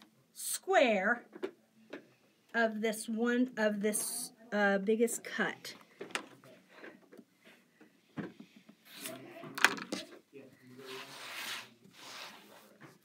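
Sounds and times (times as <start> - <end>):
blade scraping through fabric: 10.8 - 12.8.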